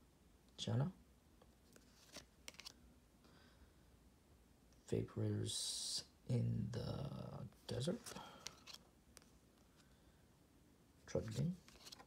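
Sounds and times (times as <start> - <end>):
trading cards clicking and scraping: 1.7 - 2.8, 8.0 - 9.3, 11.2 - 12.0.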